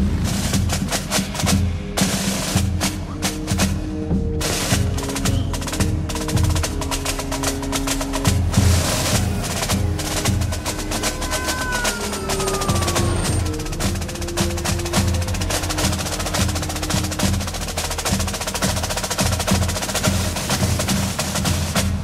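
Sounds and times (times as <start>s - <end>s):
orchestral film score: 0.0s - 22.0s
snare drum rolls: 0.0s - 22.0s.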